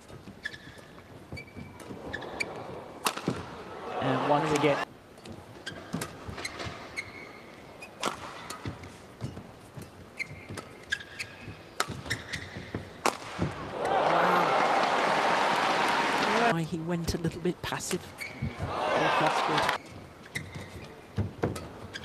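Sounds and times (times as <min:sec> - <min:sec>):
shoes squeaking on court: 0:00.0 - 0:02.9, 0:05.2 - 0:13.6, 0:18.1 - 0:18.8, 0:19.4 - 0:22.0
crowd cheering and applauding: 0:13.7 - 0:16.5, 0:18.6 - 0:19.8.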